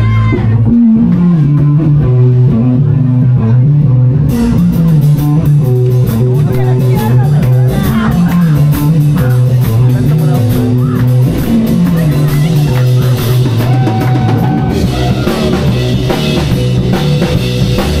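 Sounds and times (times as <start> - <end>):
bass guitar riff: 0.0 - 18.0
electric guitar: 0.0 - 18.0
drum kit with cymbals: 4.2 - 18.0.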